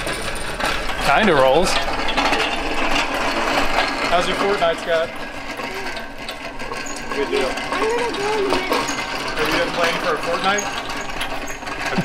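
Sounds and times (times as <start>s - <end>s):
engine stand casters rattling: 0.0s - 12.0s.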